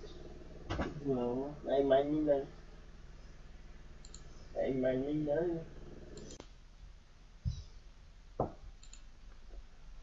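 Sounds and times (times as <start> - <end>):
person speaking: 0.9 - 2.6, 4.5 - 6.4
computer mouse clicks: 4.0 - 4.5, 6.1 - 6.6, 8.8 - 9.1.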